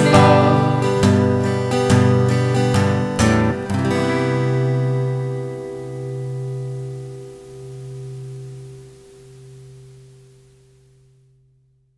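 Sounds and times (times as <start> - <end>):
guitar chord ringing out: 0.0 - 10.4
faint hiss: 0.0 - 11.9.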